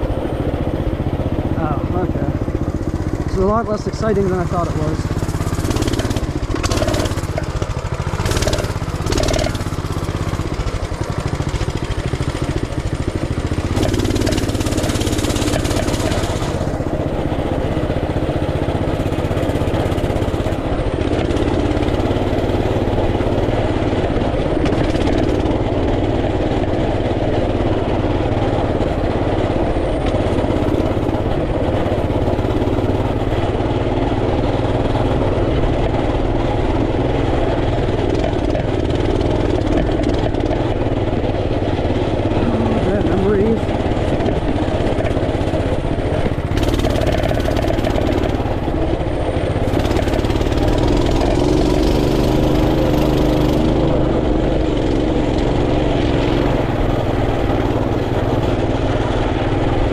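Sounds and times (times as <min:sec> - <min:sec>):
off-road vehicle engine running: 0:00.0 - 0:59.9.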